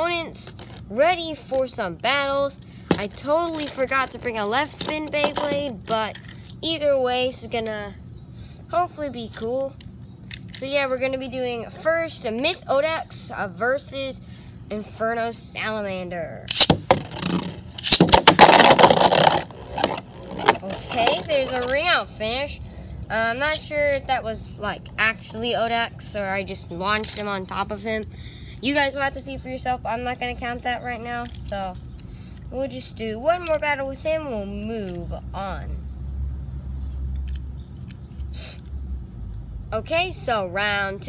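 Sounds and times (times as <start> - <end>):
spinning tops rattling and scraping: 0.0 - 7.8, 16.5 - 27.8, 30.0 - 35.1
plastic toy parts clicking: 2.9 - 6.6, 16.5 - 22.1, 26.9 - 27.6, 31.2 - 32.1, 33.4 - 33.6, 36.6 - 38.3.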